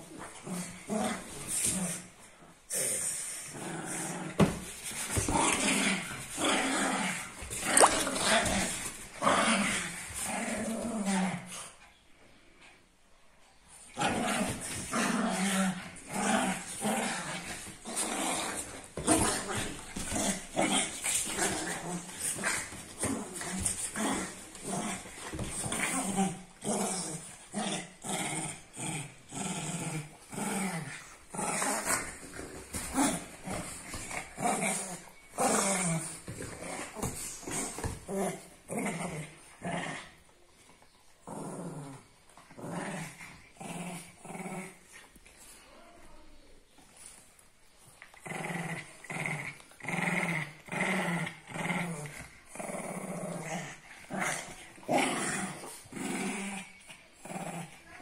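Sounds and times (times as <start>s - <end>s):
dogs growling in play: 0.0s - 58.0s.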